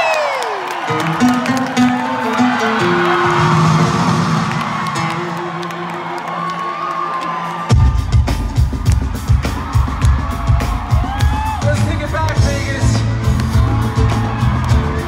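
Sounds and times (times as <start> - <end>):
crowd cheering and whooping: 0.0 - 15.0
live pop concert music: 0.0 - 15.0
heavy drum beat: 7.7 - 15.0.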